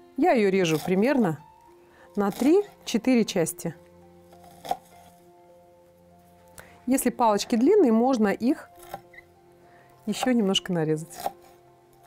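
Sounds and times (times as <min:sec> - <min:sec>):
soft music with held notes: 0:00.0 - 0:12.0
knife chopping on cutting board: 0:11.2 - 0:11.5.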